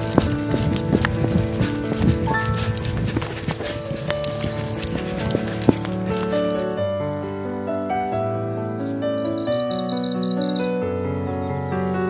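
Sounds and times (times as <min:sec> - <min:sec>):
footsteps on dirt trail: 0:00.0 - 0:06.7
background music: 0:00.0 - 0:12.0.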